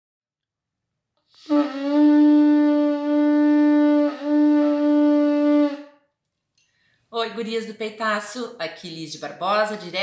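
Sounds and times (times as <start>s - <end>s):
conch shell trumpet note: 1.3s - 6.0s.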